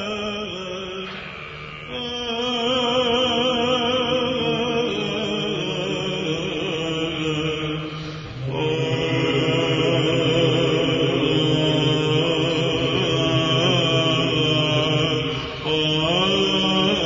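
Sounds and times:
held low vocal drone: 0.0 - 17.0
solo cantor chanting: 0.0 - 17.0.

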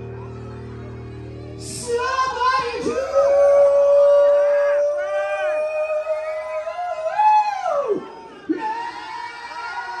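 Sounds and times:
man singing a long high note: 1.6 - 9.0.

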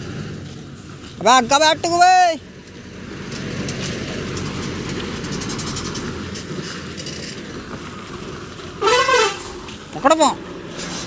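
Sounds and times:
diesel truck engine: 0.0 - 11.0.

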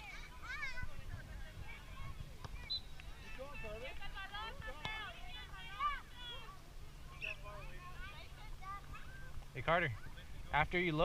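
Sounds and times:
wind rumble on microphone: 0.6 - 2.5.

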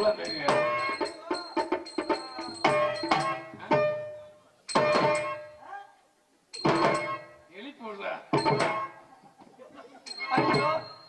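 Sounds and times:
tabla strokes: 0.0 - 5.6, 6.6 - 7.5, 8.3 - 9.1, 10.1 - 11.0.

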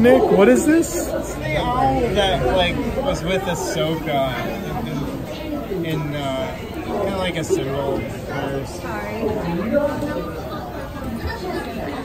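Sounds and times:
indistinct chatter of people: 0.0 - 12.0.

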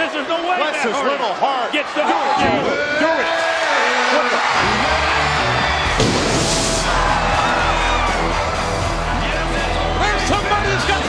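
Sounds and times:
shouted commentary: 0.0 - 5.6, 9.0 - 11.0
arena crowd noise: 0.0 - 11.0
entrance music with deep bass: 4.6 - 11.0.

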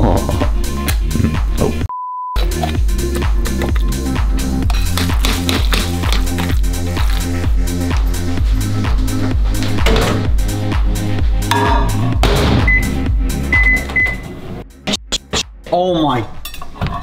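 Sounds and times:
electronic music with steady beat: 0.1 - 14.0, 14.7 - 15.6
microwave oven beeps: 12.7 - 14.3.

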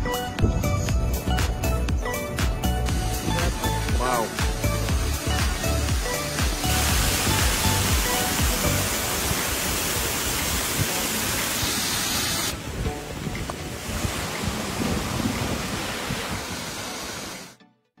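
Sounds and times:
water rushing through sluice: 3.0 - 17.6.

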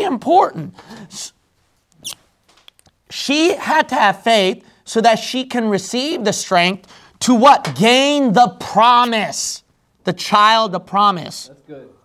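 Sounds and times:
marker squeaking on whiteboard: 1.9 - 2.8.

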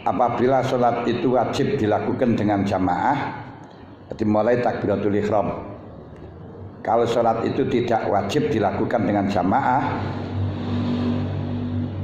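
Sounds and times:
steady low hum: 0.0 - 12.0
steady higher tone: 9.5 - 12.0.

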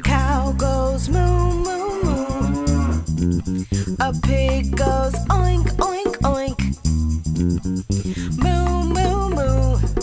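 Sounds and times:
bouncy children's song music: 0.0 - 10.0
cow mooing: 1.8 - 3.1.

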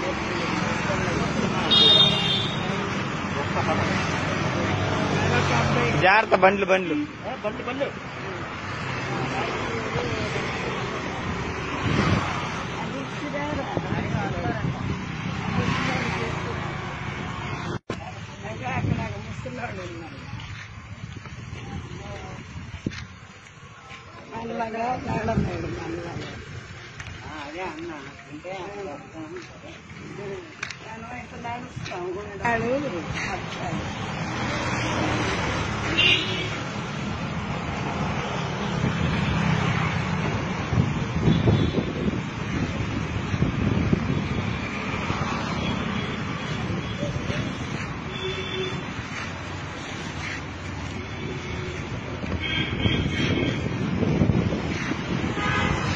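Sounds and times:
indistinct voices talking: 0.0 - 55.9
street traffic: 0.0 - 55.9
wind buffeting microphone: 40.2 - 44.8, 51.8 - 55.9.

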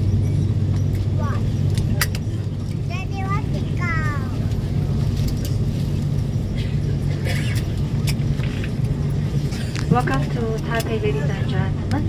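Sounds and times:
low engine rumble: 0.0 - 12.0.

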